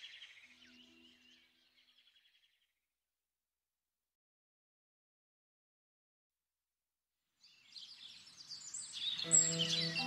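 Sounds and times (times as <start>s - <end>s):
birdsong chirps: 0.0s - 2.8s, 7.4s - 10.0s.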